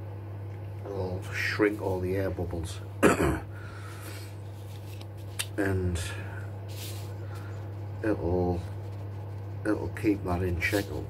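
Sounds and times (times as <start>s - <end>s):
steady low hum: 0.0s - 11.0s
gloved hand rubbing beaker: 4.2s - 11.0s.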